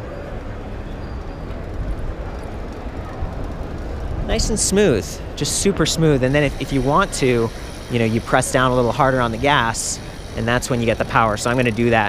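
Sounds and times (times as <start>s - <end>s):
bicycle riding rumble: 0.0s - 12.0s.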